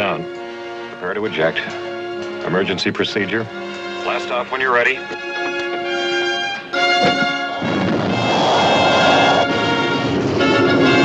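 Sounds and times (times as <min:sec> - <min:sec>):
rushing rocket blast: 0:07.4 - 0:11.0.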